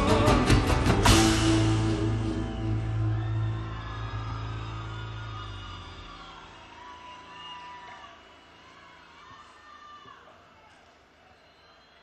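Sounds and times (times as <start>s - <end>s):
crowd cheering and whistling: 0.0s - 12.0s.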